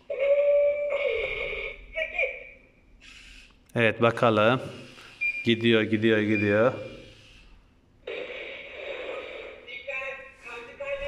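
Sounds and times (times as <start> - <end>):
toy robot motors whirring: 3.0 - 3.6.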